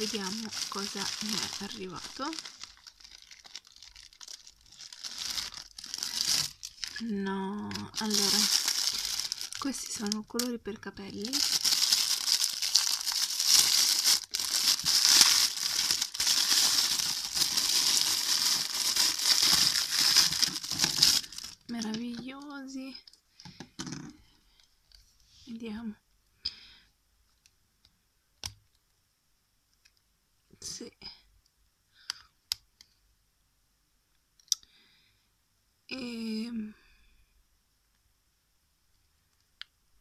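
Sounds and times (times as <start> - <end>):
plastic bag crinkling: 0.0 - 23.2.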